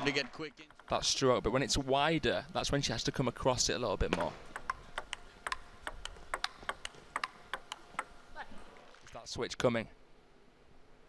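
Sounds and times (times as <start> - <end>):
table tennis ball clicking: 4.1 - 8.2.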